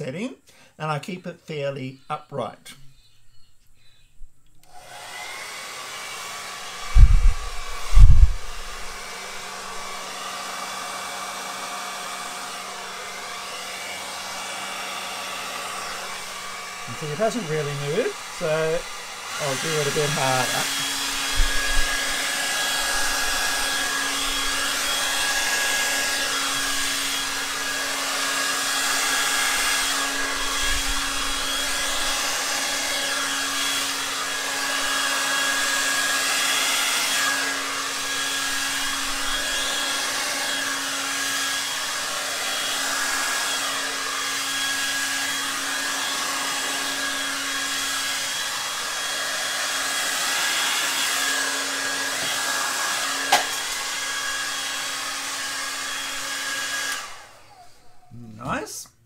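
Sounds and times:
hair dryer running: 0:04.6 - 0:58.1.

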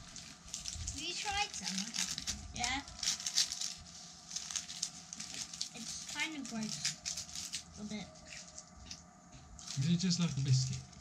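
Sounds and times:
crisp crackles of wrappers: 0:00.0 - 0:09.0, 0:09.6 - 0:09.9.

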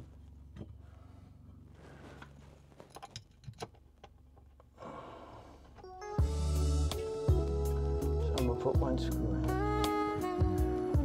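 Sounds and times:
soft rustle: 0:00.0 - 0:04.0
low steady hum: 0:00.0 - 0:11.0.

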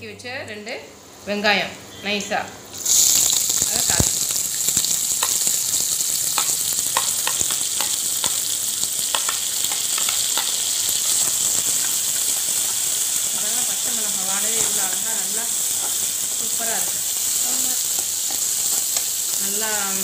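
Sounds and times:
vegetables sizzling in hot oil: 0:01.2 - 0:20.0
spatula clicking against pan: 0:06.3 - 0:08.4, 0:09.0 - 0:10.6.

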